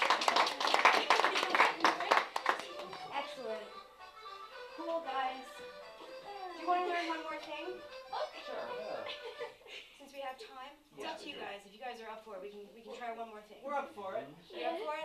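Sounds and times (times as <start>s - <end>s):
music playing: 1.1s - 9.7s.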